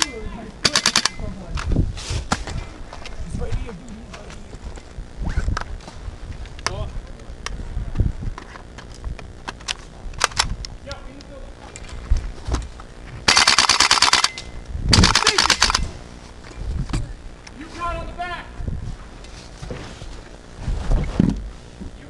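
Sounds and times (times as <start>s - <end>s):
airsoft rifle full-auto bursts: 0.0s - 1.2s, 13.2s - 16.0s
airsoft shots clicking: 0.0s - 1.2s, 9.6s - 10.5s, 13.3s - 15.9s.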